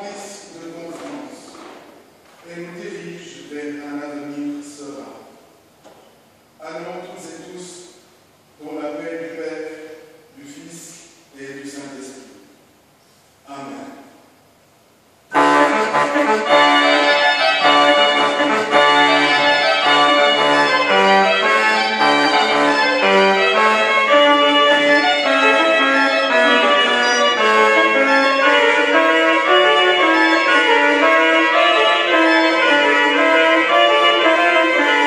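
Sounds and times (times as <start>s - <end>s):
pipe organ chords: 15.3s - 35.0s.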